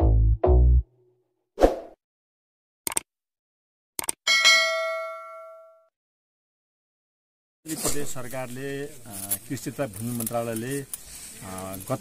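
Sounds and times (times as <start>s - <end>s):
quick clicks: 2.9s - 3.1s, 4.0s - 4.2s
bright bell ding: 4.3s - 5.9s.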